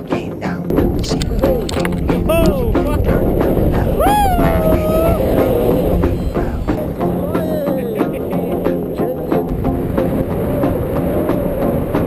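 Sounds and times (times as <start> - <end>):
howl-like vocal cry: 2.1 - 9.5.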